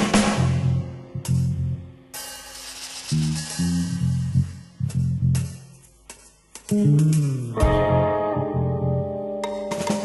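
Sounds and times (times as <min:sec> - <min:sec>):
sharp drum hit: 0:00.0 - 0:00.8.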